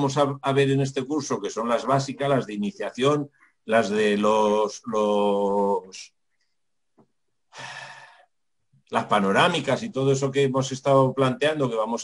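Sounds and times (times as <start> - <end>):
man speaking: 0.0 - 6.2, 8.9 - 12.0
man sighing: 7.5 - 8.3.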